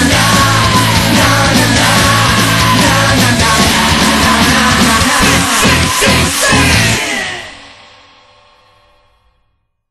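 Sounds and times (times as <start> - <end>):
punk rock chord ringing out: 0.0 - 8.7.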